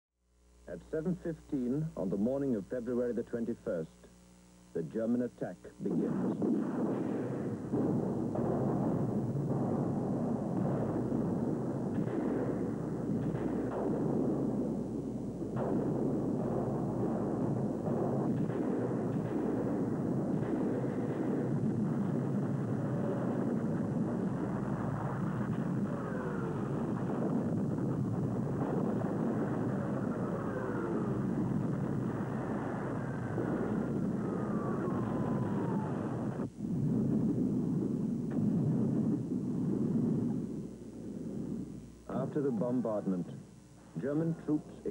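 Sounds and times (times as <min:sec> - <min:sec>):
muffled rumble of shell bursts: 0:04.7 - 0:44.9.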